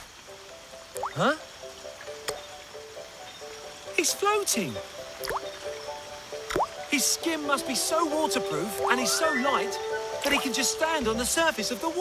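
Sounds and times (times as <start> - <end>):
rising water-drop plinks: 0.8 - 2.5, 4.0 - 7.2
music of held notes: 6.9 - 12.0.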